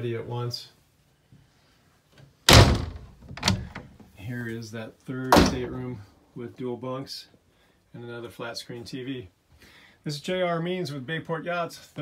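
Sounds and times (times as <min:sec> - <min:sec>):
wooden door banging shut: 0:02.5 - 0:04.0, 0:05.3 - 0:05.8.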